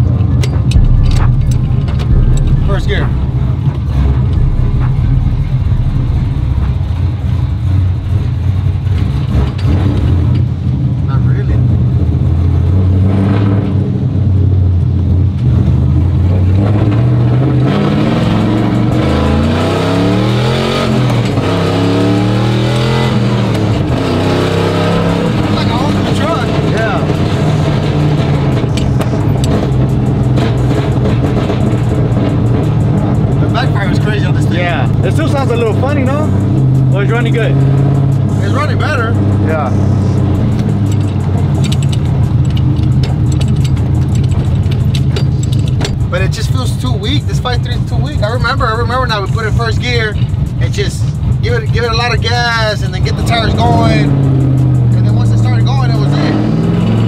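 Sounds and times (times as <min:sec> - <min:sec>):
pickup engine revving and shifting: 0:12.0 - 0:14.2, 0:15.3 - 0:45.9, 0:52.9 - 0:57.0.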